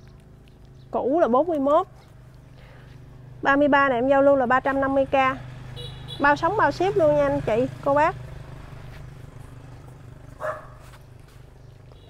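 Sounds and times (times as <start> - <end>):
faint dog bark: 10.4 - 10.9.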